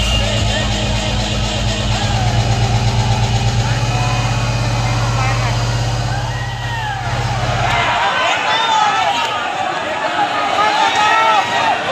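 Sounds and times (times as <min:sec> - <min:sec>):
deep pulsing bass drone: 0:00.0 - 0:08.5
crowd shouting: 0:00.0 - 0:11.9.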